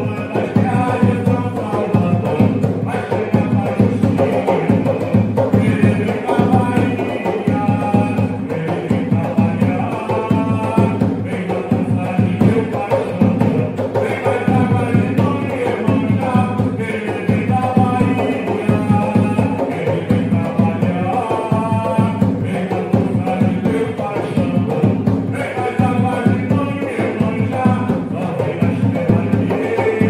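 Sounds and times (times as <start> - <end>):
hand drum beating fast rhythm: 0.0 - 30.0
man singing into a microphone: 0.0 - 30.0.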